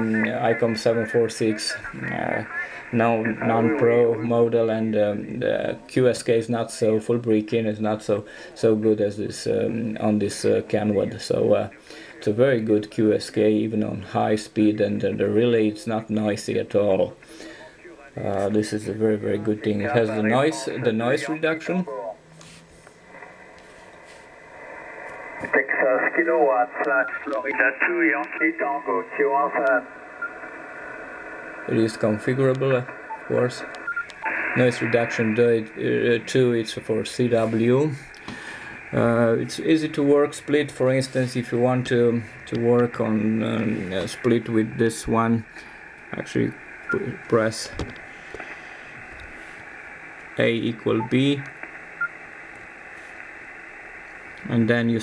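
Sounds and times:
man's voice: 0.0s - 22.2s
faint radio hiss: 0.0s - 55.0s.

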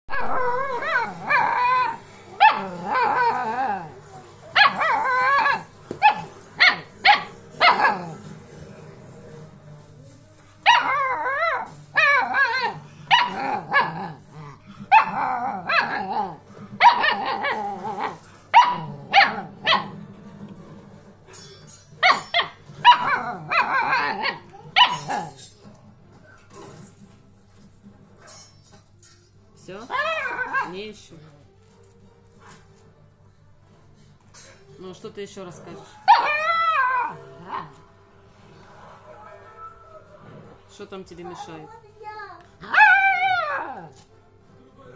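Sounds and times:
puppy whining and grumbling: 0.1s - 6.4s, 10.7s - 20.0s, 22.1s - 25.5s, 29.9s - 30.8s, 35.8s - 37.8s, 42.6s - 44.1s.

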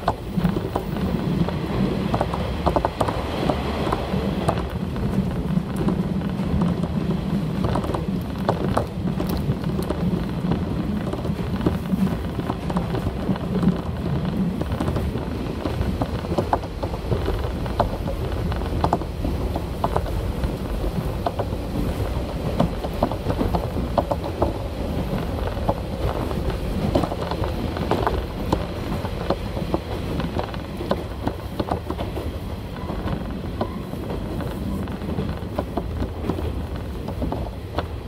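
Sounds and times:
rumble of wheels on rail: 0.0s - 38.0s
track clicks and knocks: 0.0s - 38.0s.

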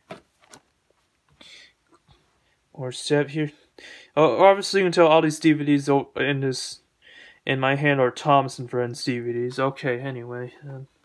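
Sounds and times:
plastic cases being handled: 0.0s - 1.3s.

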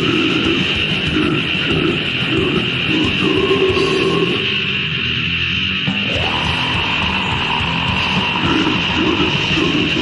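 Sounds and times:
heavy metal music: 0.0s - 10.0s.

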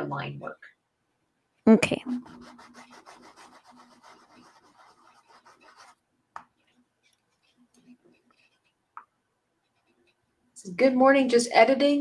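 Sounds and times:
paintbrush rubbing on paper: 2.1s - 9.0s, 9.6s - 10.3s.

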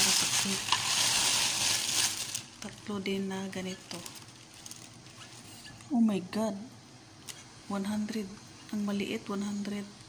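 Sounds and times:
plastic bag rustling and crinkling: 0.0s - 5.7s.

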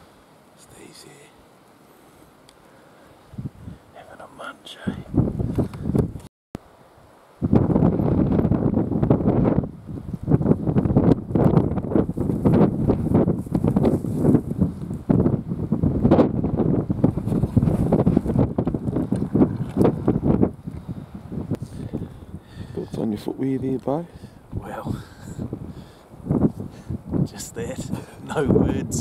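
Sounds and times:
strong wind buffeting microphone: 3.2s - 3.9s, 4.8s - 6.3s, 6.9s - 29.0s.

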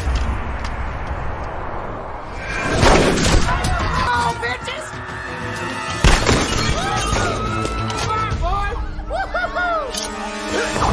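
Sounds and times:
heavy low rumble: 0.0s - 3.9s.

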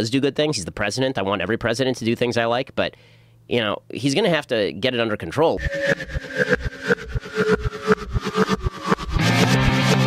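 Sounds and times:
loud rock music: 5.6s - 10.0s
low pulse under held tones: 5.6s - 10.0s.

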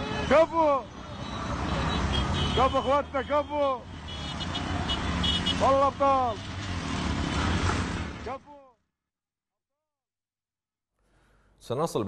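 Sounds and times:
man shouting: 0.0s - 0.9s, 5.5s - 6.4s
auto-rickshaw engines droning: 0.0s - 8.6s.

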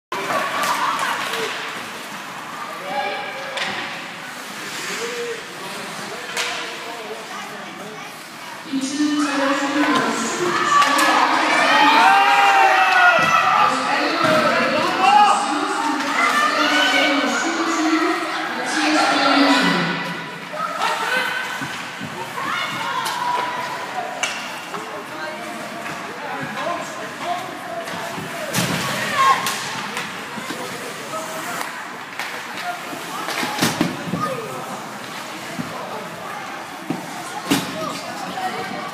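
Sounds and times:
spectators shouting: 9.2s - 21.6s.

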